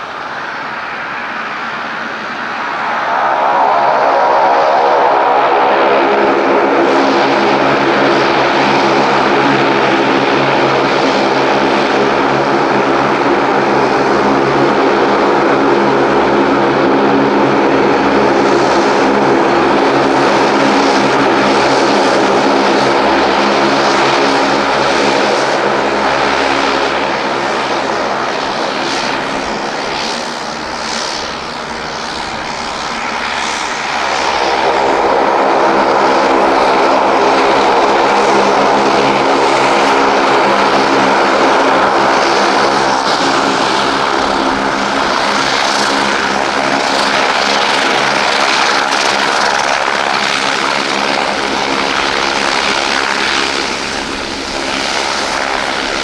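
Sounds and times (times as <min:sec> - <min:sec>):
propeller hum: 0:00.0 - 0:56.0
turbine whine: 0:00.0 - 0:56.0.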